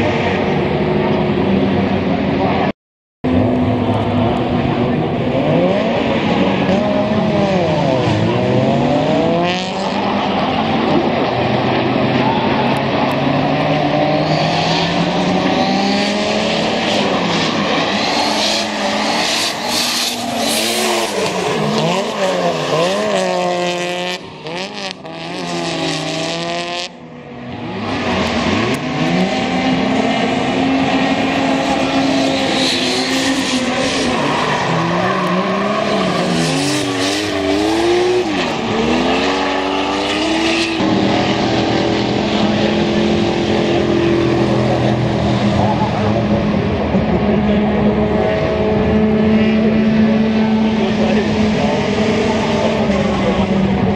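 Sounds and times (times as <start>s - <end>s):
car engines revving: 0.0s - 53.9s.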